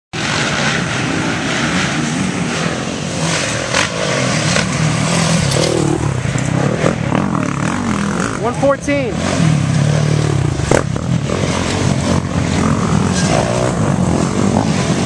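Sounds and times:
dirt bike engines revving: 0.2 - 15.0.

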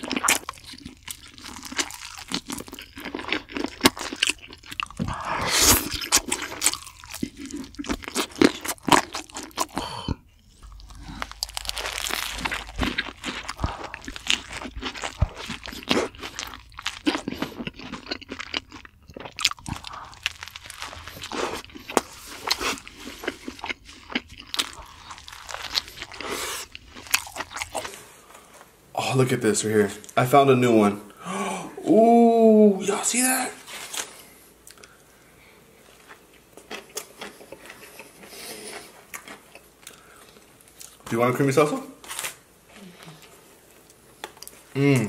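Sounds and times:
person chewing crunchy food: 0.0 - 28.6, 35.7 - 41.0.

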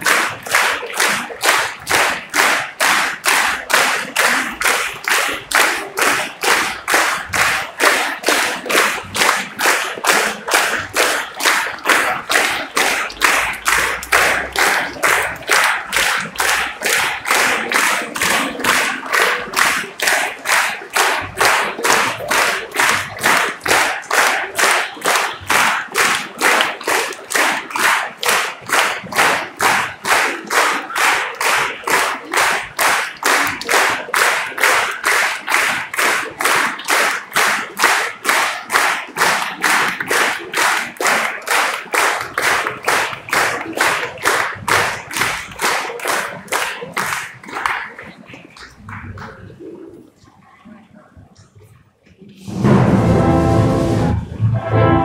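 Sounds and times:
audience clapping in unison: 0.0 - 53.3.

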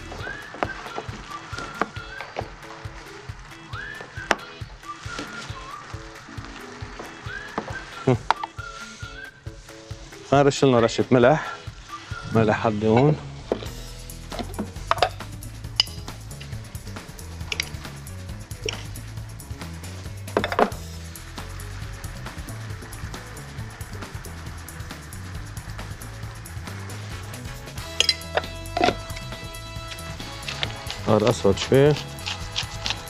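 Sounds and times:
background music with low beat: 0.0 - 33.0
kitchen utensils clicking: 17.5 - 17.8, 28.0 - 31.1
pepper mill grinding: 20.4 - 33.0.

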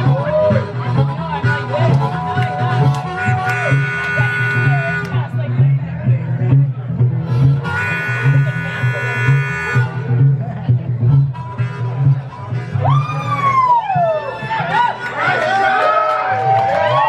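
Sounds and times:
harmonica chords: 0.0 - 15.8.

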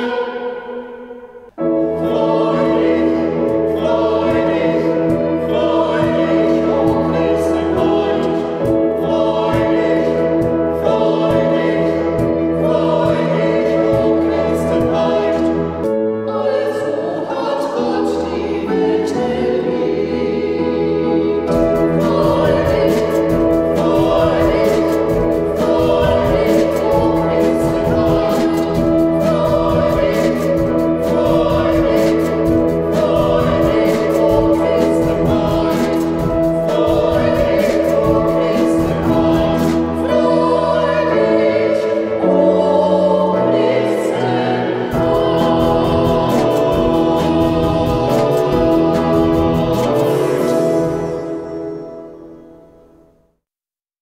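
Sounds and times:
choir singing: 0.0 - 52.6
sustained instrumental accompaniment: 0.0 - 52.9
regular drum beat: 21.5 - 40.0, 44.9 - 50.4.

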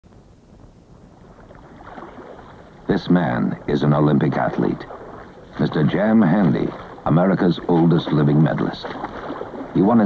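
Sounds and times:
water splashing from swimming: 1.1 - 10.0.

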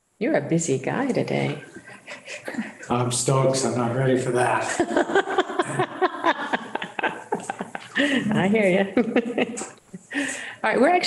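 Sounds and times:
people speaking: 0.2 - 1.7, 2.5 - 11.0
people laughing: 4.4 - 10.2.

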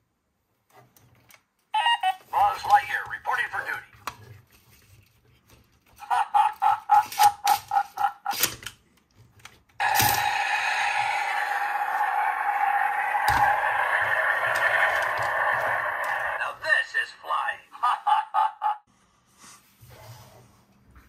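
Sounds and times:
rushing rocket-blast sound effect: 9.8 - 16.5.

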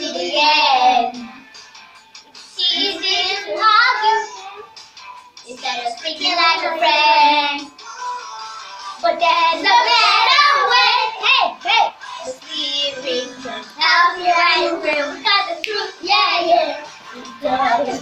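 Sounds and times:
children singing: 0.0 - 1.4, 2.6 - 4.7, 5.5 - 7.7, 9.0 - 18.0.

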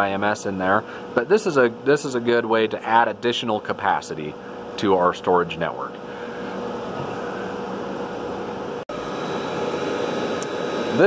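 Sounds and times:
cooling fans whirring: 0.0 - 11.0
faint steady hum: 0.0 - 11.0.

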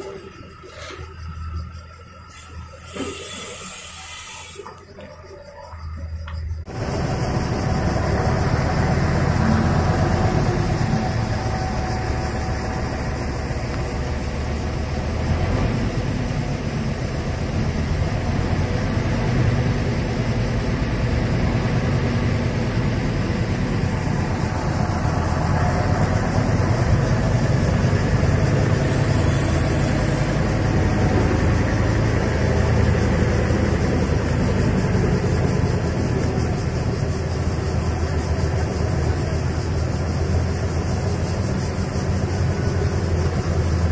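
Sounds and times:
heavy diesel machinery running: 0.0 - 43.9.

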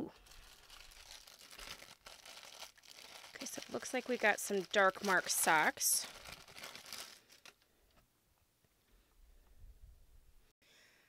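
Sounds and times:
plastic bag crinkling: 0.1 - 7.6.

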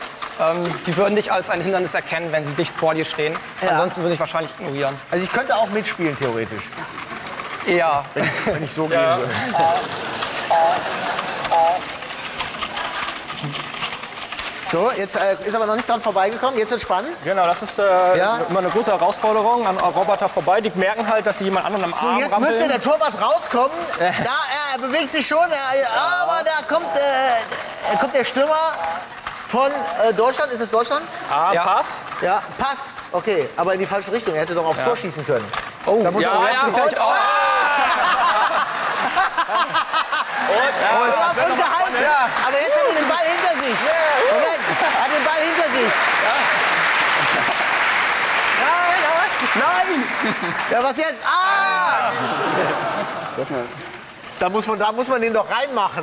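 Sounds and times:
robot joint motors whining: 0.0 - 39.3
people laughing: 6.6 - 14.9, 21.7 - 29.2, 36.2 - 54.1
excited voices exclaiming: 21.8 - 30.0, 36.2 - 53.8.

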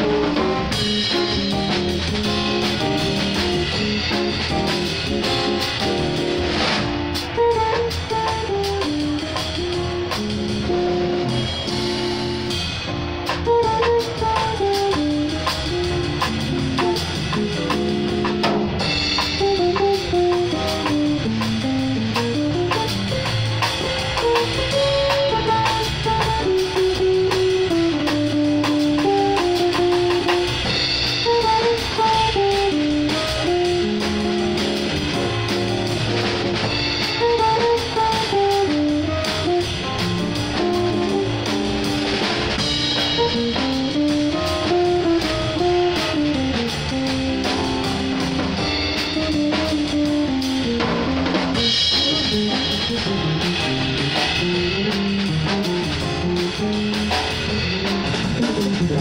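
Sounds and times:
drum kit with cymbals: 0.0 - 59.0
electric guitar melody: 0.0 - 59.0.

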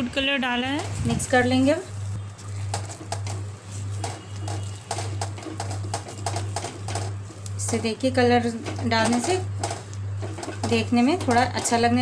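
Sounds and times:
low pulsing hum: 0.0 - 12.0.

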